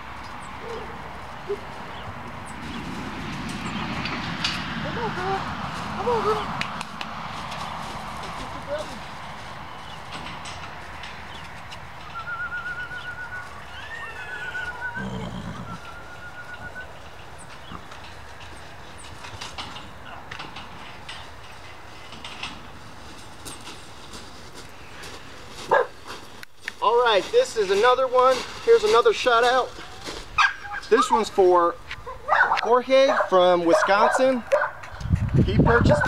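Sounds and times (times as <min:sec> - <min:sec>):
footsteps on gravel: 0:01.0 - 0:12.0, 0:22.7 - 0:32.0
wind rumbling on microphone: 0:34.5 - 0:36.0.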